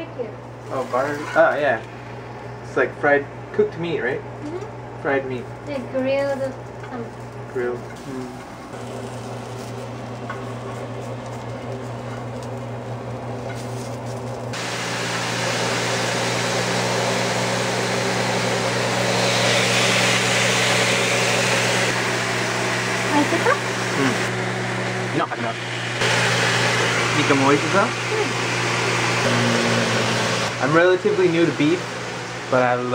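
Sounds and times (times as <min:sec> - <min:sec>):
food sizzling in a frying pan: 0:06.4 - 0:12.7.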